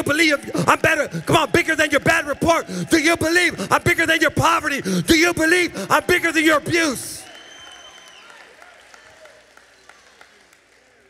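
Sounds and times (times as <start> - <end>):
congregation calling out: 0.0 - 7.4
congregation clapping: 4.7 - 11.0.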